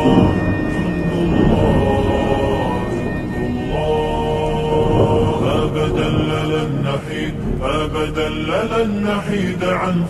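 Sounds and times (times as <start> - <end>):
male voices chanting long notes: 0.0 - 10.0.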